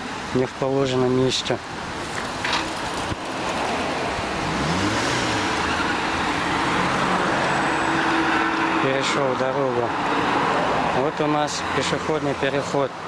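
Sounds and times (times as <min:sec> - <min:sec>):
cars driving past: 0:01.7 - 0:13.0
engine pitch rising and falling: 0:02.8 - 0:09.2.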